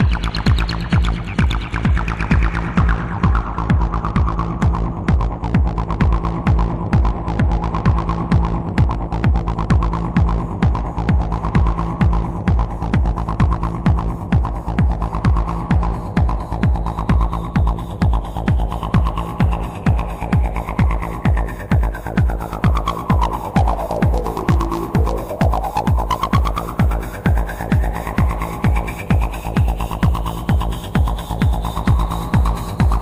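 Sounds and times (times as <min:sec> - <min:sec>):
kick drum pulse: 0:00.0 - 0:33.0
low hum: 0:01.7 - 0:33.0
filtered synth tone sweeping: 0:11.0 - 0:33.0.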